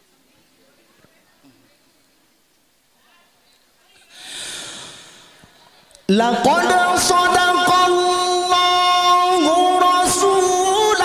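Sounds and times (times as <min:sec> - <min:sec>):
deep breath into microphone: 0:04.1 - 0:05.8.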